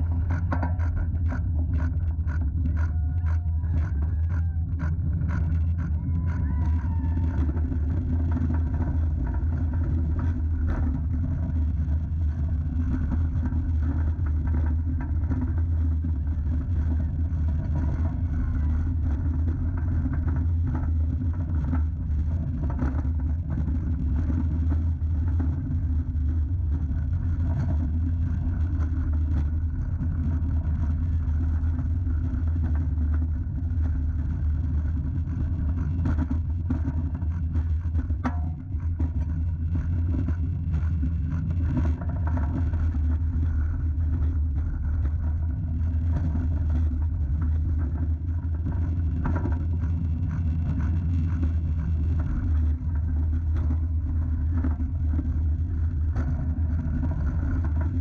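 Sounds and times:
roller coaster wheels rumbling on rail: 0.0 - 58.0.

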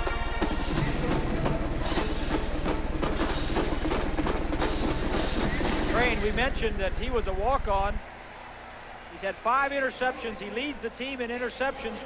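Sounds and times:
band music with drum beat: 0.0 - 8.0
stadium crowd noise: 0.0 - 12.0
steady low hum: 0.6 - 12.0.

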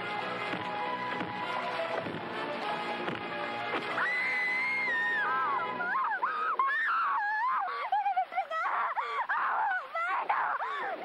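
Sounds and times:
woman wailing in pain: 4.0 - 11.0.

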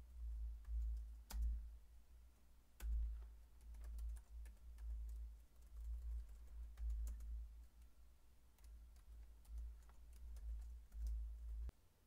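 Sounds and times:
computer keyboard typing: 0.6 - 1.6, 2.8 - 8.0, 8.6 - 11.7.

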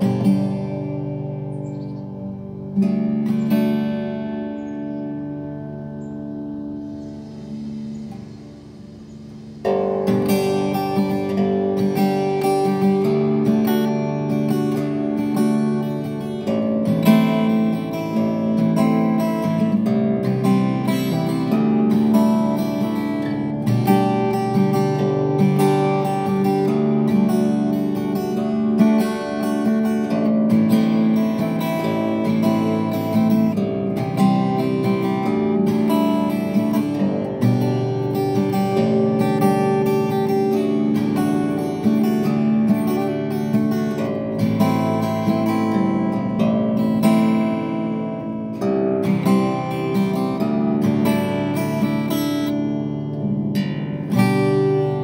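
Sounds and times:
harp guitar strumming chords: 0.0 - 55.0.

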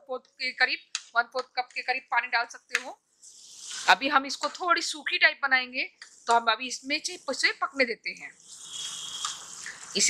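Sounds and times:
woman speaking: 0.0 - 3.0, 3.8 - 8.3, 9.7 - 10.0
food sizzling in frying pan: 3.3 - 4.0.

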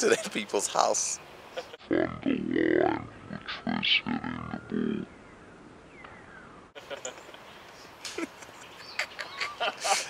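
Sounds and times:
man laughing: 0.0 - 0.5, 1.6 - 1.9, 6.8 - 10.0
faint outdoor background: 0.0 - 10.0.

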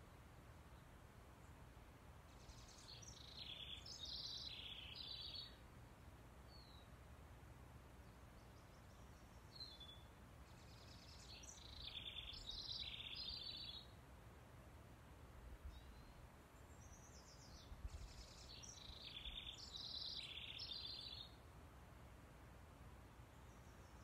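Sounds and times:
songbird singing: 0.0 - 7.2, 7.8 - 14.0, 15.2 - 21.5, 23.0 - 24.0.

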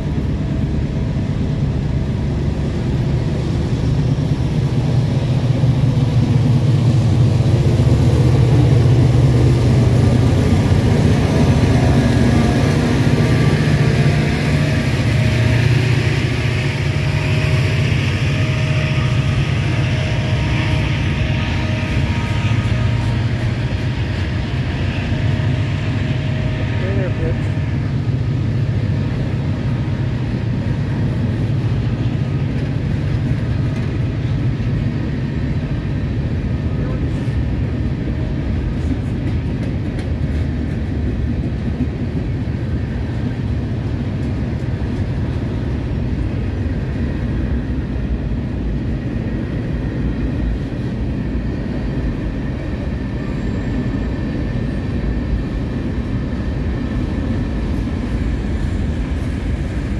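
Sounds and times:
diesel locomotive rumble: 0.0 - 59.9
freight cars rolling on rails: 0.0 - 59.9.

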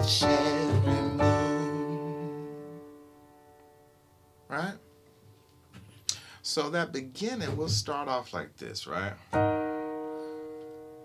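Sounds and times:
piano chord: 0.0 - 5.0, 9.3 - 11.0.

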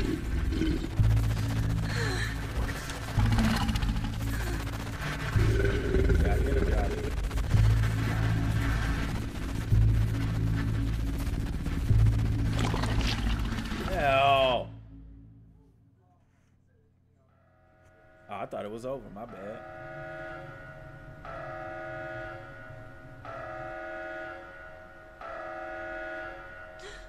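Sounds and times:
dark music with low bass pulse: 0.0 - 16.5, 17.2 - 27.0.

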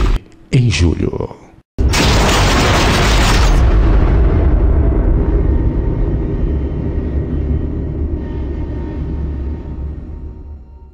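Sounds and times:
deep cinematic rumble: 3.7 - 10.9
faint sustained tones: 4.7 - 10.9.

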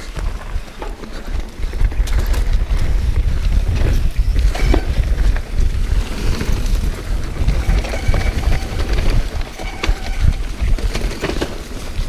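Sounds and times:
bike clicks and rattles: 0.0 - 12.0
tyres running over dirt: 0.0 - 12.0
wind buffeting microphone: 0.0 - 12.0.

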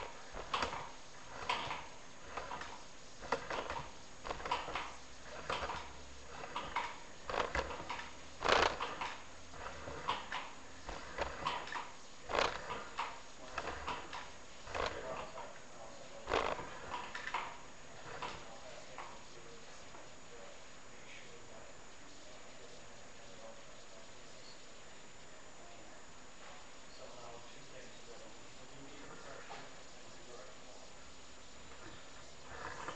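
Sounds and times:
cable knocking and scraping in pipe: 0.0 - 15.4.

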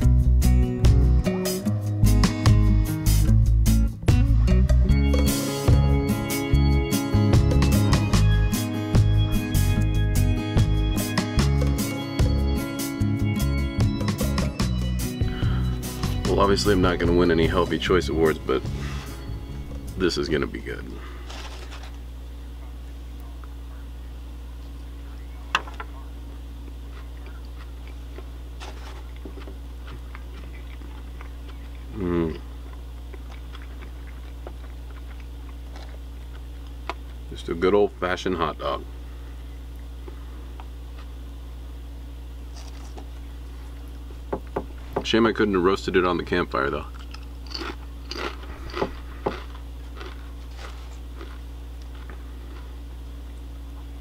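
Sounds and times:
steady low hum: 0.0 - 54.0
crunching potato chip: 21.0 - 22.0, 26.7 - 37.2, 42.5 - 43.2, 46.8 - 52.8
chewing clicks: 29.0 - 37.2, 46.9 - 52.7.

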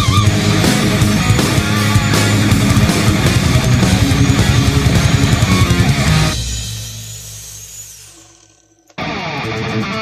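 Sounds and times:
angle grinder winding down: 0.0 - 10.0.

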